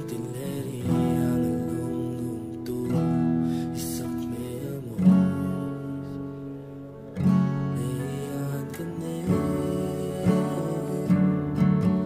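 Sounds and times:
acoustic guitar strummed chords: 0.0s - 12.0s.

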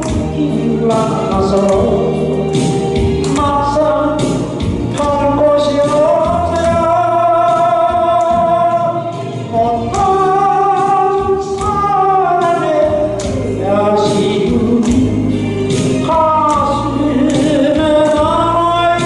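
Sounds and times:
backing music: 0.0s - 19.0s
man singing into a microphone: 0.0s - 19.0s.

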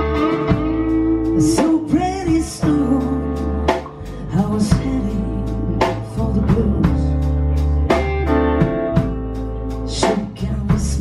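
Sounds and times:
blues band playing: 0.0s - 11.0s
electric guitar lead: 0.0s - 11.0s.

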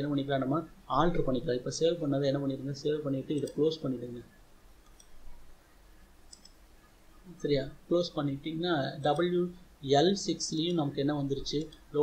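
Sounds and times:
computer mouse clicks: 4.8s - 5.4s, 6.3s - 6.6s, 11.5s - 11.9s.

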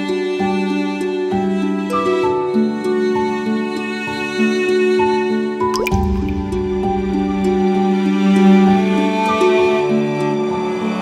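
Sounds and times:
soft background music: 0.0s - 11.0s
liquid drip plink: 5.8s - 7.6s
low swell: 5.8s - 8.7s.

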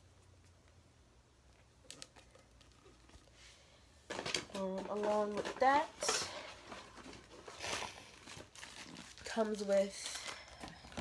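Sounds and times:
packaging rustling and crinkling: 4.1s - 11.0s.

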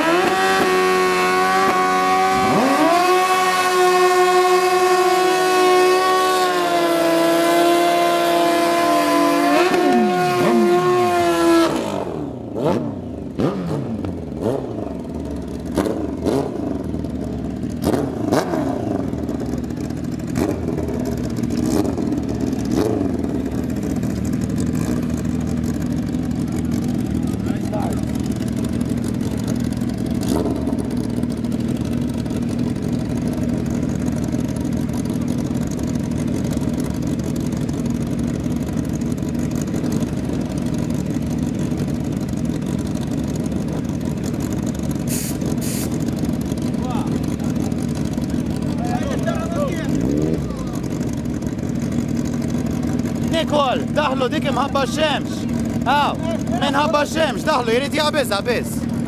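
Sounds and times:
motorcycle engines idling: 0.0s - 59.0s.

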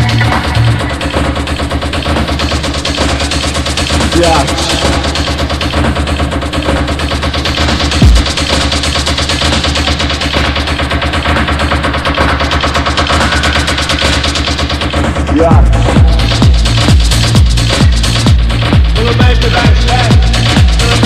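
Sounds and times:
techno music: 0.0s - 21.0s
heavy bass hit: 4.0s - 6.2s, 7.9s - 8.7s, 15.2s - 21.0s.

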